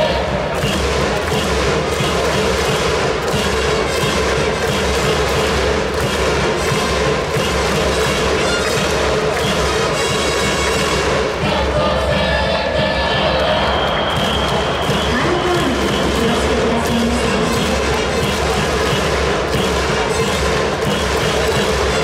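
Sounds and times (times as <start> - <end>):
crowd noise: 0.0 - 22.0
steady drumbeat: 0.0 - 22.0
crowd singing a cheer song: 10.9 - 22.0.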